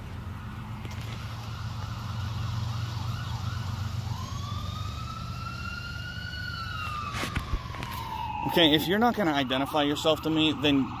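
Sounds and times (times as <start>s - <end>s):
emergency vehicle siren: 0.0s - 11.0s.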